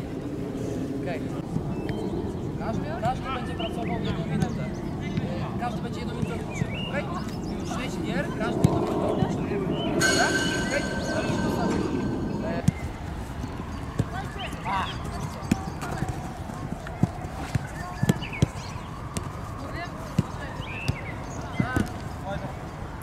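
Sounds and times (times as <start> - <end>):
high-pitched tone: 10.0 - 12.7.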